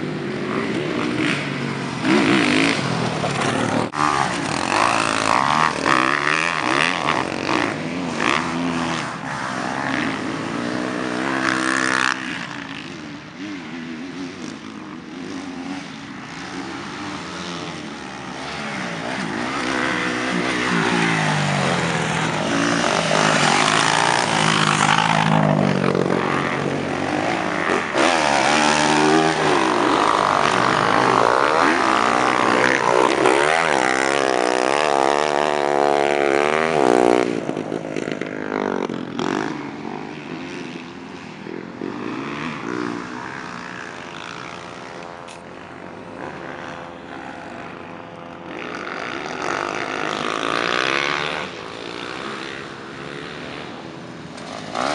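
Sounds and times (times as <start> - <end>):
dirt bike engines revving: 0.0 - 54.9.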